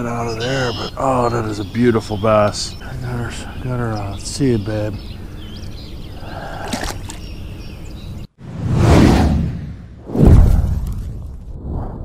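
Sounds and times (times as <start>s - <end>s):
outdoor background noise: 0.0s - 11.7s
water splashing: 6.4s - 7.2s
rising whoosh effect: 8.4s - 12.0s.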